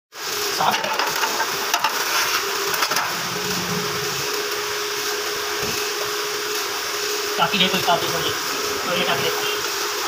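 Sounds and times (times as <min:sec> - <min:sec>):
machine hissing: 0:02.0 - 0:10.0
steady hum: 0:02.7 - 0:05.7.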